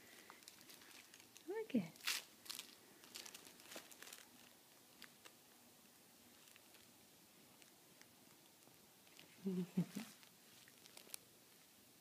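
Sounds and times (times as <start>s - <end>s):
toys rustling and crinkling: 0.0s - 5.4s, 6.3s - 6.9s, 7.5s - 11.3s.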